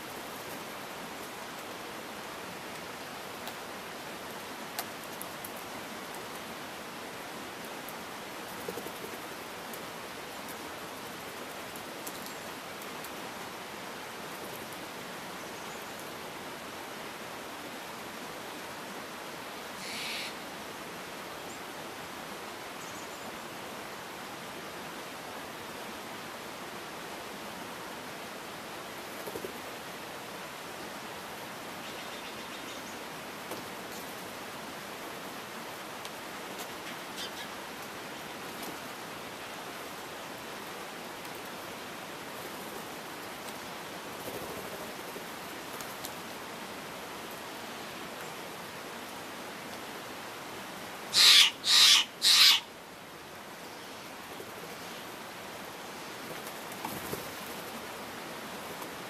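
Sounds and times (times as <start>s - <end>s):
steady background hiss: 0.0s - 59.0s
jay giving harsh calls: 19.8s - 20.4s, 51.1s - 52.7s.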